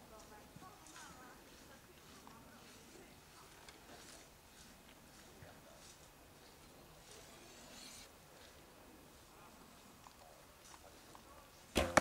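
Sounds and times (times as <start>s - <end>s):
arrow striking foam target: 11.8s - 12.0s
bowstring twang: 11.8s - 12.0s.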